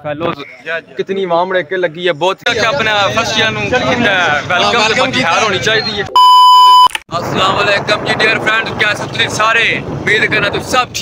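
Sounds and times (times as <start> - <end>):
censor bleep: 6.1 - 7.0
man talking: 7.1 - 11.0.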